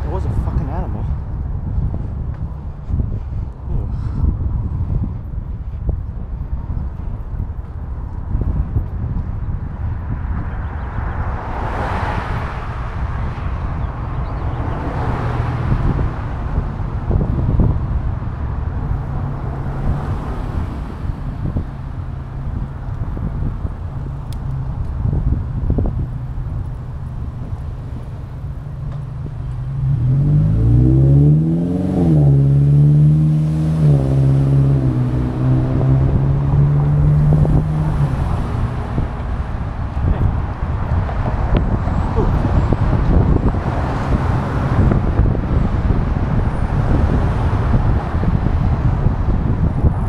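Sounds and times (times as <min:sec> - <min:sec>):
vehicle engine humming: 0:00.0 - 0:50.0
wind noise on microphone: 0:00.0 - 0:50.0.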